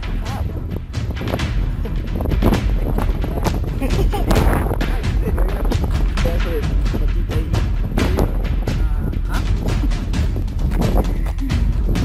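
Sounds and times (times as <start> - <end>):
music with loud drum beat: 0.0 - 12.0.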